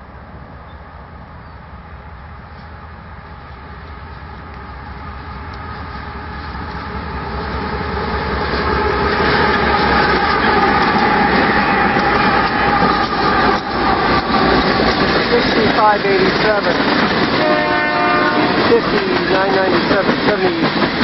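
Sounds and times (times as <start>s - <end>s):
diesel locomotives passing: 0.0s - 21.0s
tank cars rolling on rails: 8.4s - 17.5s, 18.5s - 21.0s.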